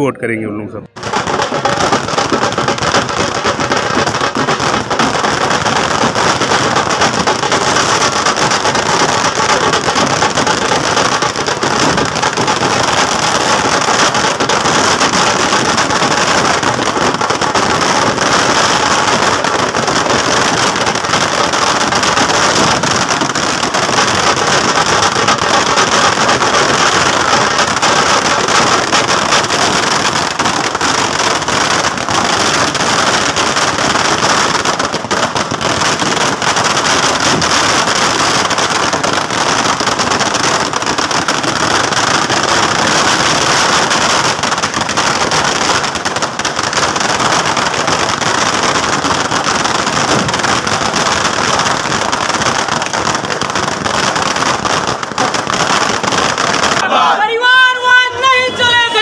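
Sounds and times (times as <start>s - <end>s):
firecrackers crackling: 0.8s - 59.0s.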